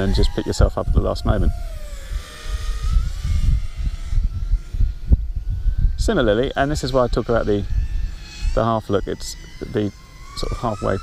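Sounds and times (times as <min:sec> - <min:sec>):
drone motors whining: 0:00.0 - 0:11.0
wind rumble on microphone: 0:00.0 - 0:11.0.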